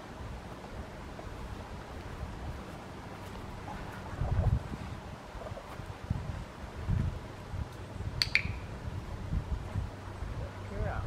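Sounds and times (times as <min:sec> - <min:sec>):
dog-training clicker clicking: 0:08.2 - 0:08.6.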